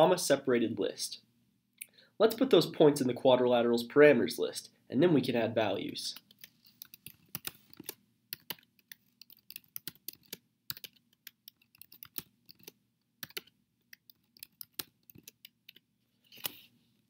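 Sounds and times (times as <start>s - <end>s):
computer keyboard typing: 6.2s - 16.6s.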